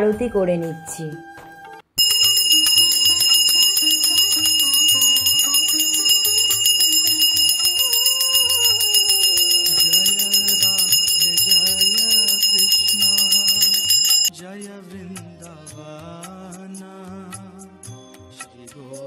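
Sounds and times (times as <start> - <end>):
hand bell rung rapidly: 2.0 - 14.3.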